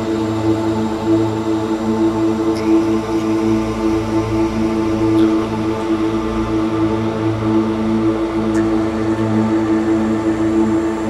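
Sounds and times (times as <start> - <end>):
low drone ambient music: 0.0 - 11.0.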